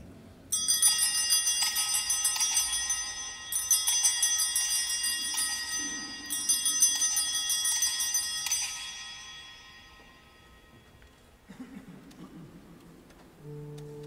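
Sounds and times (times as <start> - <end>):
small altar bells ringing: 0.5 - 11.4.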